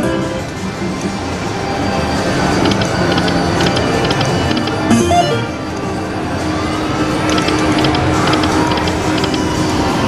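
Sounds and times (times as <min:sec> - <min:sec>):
slot machine game music: 0:03.0 - 0:06.1.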